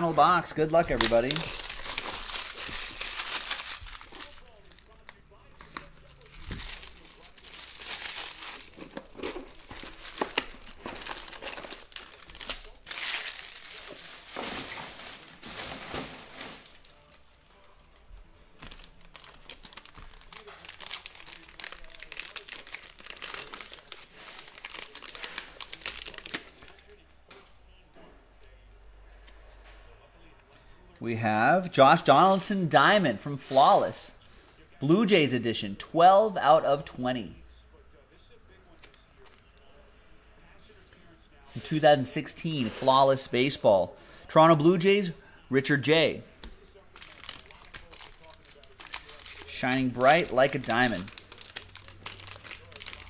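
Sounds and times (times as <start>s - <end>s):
shrink wrap crinkling and tearing: 0.1s - 27.0s, 45.6s - 53.0s
plastic packaging crinkling: 0.2s - 27.0s, 46.5s - 53.0s.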